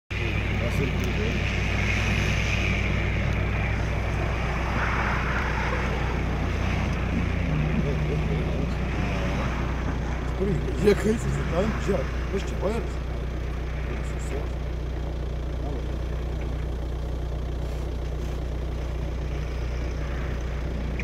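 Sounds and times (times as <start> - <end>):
car engine rumbling: 0.1 - 21.0
wash of noise: 1.3 - 10.2.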